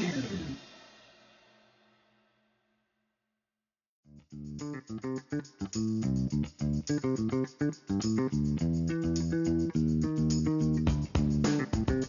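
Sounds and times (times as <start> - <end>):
guitar-led track with bass: 4.1 - 12.0.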